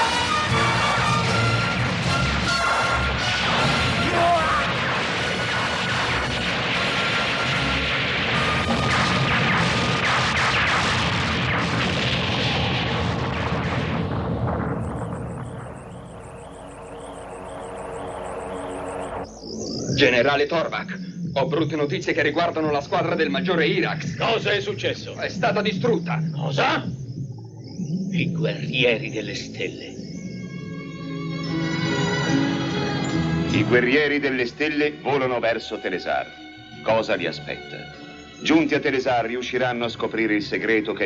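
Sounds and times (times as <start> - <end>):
dramatic background music: 0.0 - 19.6, 29.2 - 40.1
cartoon explosions: 0.0 - 20.8.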